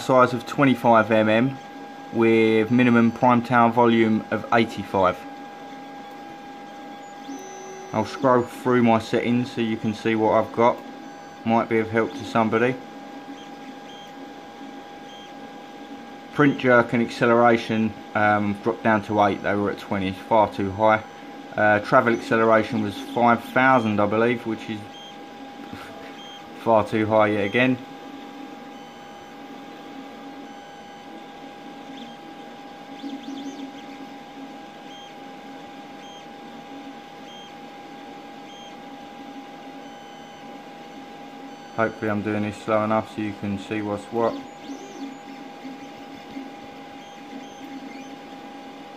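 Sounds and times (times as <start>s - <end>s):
printer humming: 0.0s - 48.9s
short high motor tones: 5.9s - 14.3s, 39.8s - 48.4s.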